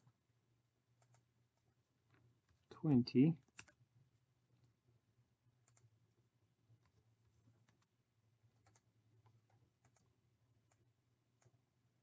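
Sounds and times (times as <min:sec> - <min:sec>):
computer mouse clicks: 0:01.0 - 0:01.3, 0:03.4 - 0:03.8, 0:05.6 - 0:05.9, 0:07.6 - 0:07.9, 0:08.6 - 0:11.6.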